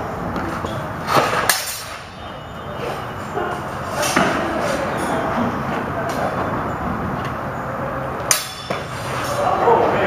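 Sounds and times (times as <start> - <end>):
swords clashing: 1.5 - 2.0, 8.3 - 9.4.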